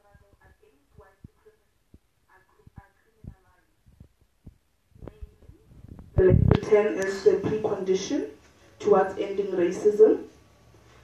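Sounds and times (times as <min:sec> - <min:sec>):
faint low thumps: 0:00.0 - 0:07.8.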